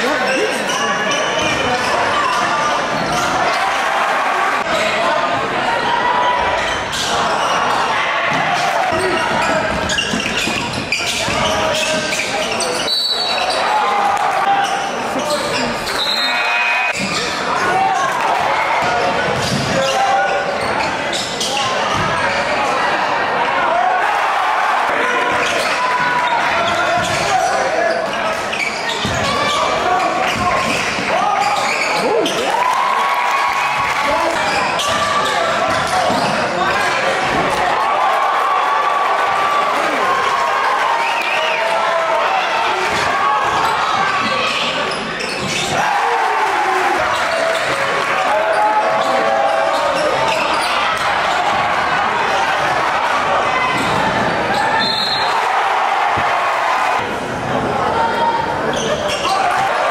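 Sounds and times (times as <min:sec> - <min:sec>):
crowd chatter echoing: 0:00.0 - 0:59.9.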